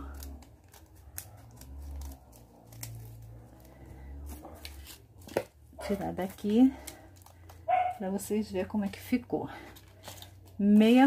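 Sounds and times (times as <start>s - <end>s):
scissors snipping paper: 0.0s - 8.2s, 9.8s - 11.0s
foil sheet crinkling: 0.0s - 9.0s.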